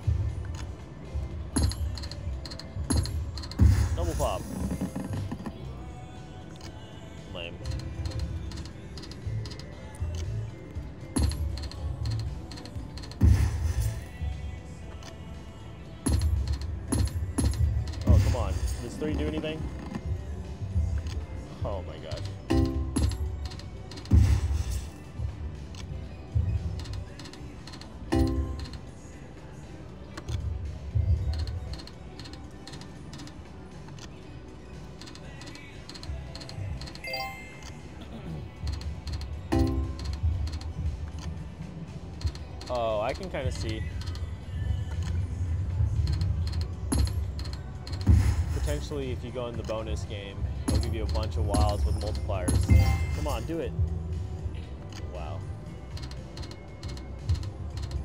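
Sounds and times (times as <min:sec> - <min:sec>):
casino background music: 0:00.0 - 0:58.0.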